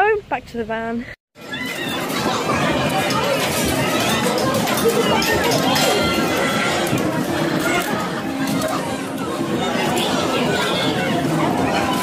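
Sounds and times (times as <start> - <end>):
amusement arcade din: 1.4 - 12.0
chatter of voices: 1.4 - 12.0.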